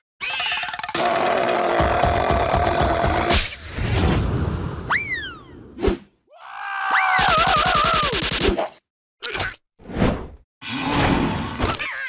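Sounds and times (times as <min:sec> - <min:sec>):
cartoon creature shrill rattling scream: 0:00.2 - 0:03.4, 0:06.6 - 0:08.2.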